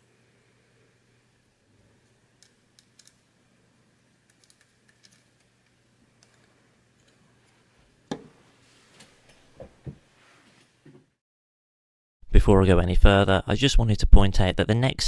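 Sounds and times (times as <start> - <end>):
small screws clicking and tapping: 2.4 - 3.2, 4.2 - 7.2.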